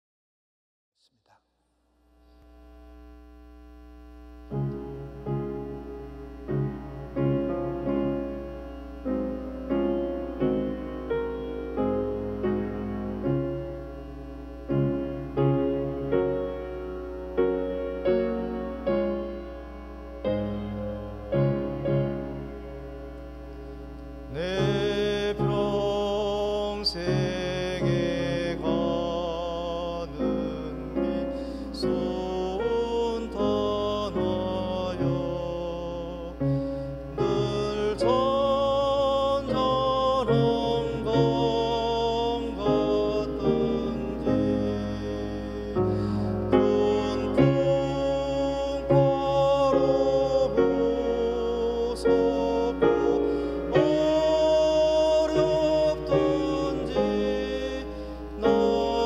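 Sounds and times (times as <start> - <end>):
electrical mains hum: 1.2 - 59.0
piano and organ accompaniment: 3.8 - 59.0
man singing a hymn: 24.2 - 59.0.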